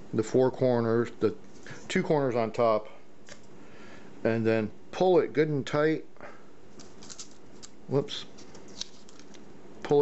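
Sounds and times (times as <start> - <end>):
paper and tape rustling: 6.8 - 7.7, 8.3 - 9.4.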